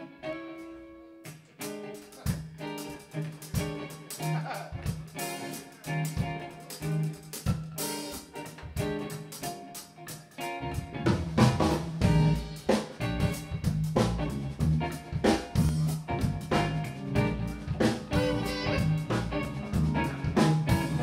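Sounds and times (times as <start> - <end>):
bass guitar: 0.0 - 21.0
electric guitar: 0.0 - 21.0
keyboard: 0.0 - 21.0
drum kit: 0.6 - 21.0.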